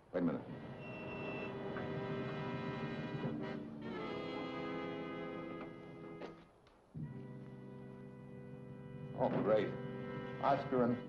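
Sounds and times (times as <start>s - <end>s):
orchestral music with brass chords: 1.5s - 6.2s, 7.0s - 11.0s.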